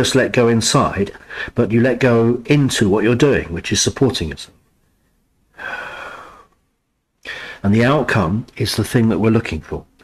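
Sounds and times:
man exhaling: 0:05.6 - 0:06.6, 0:07.2 - 0:07.6.

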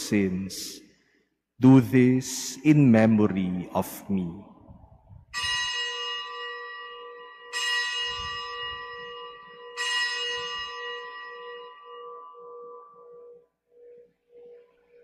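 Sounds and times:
bell ringing: 0:05.4 - 0:15.0.

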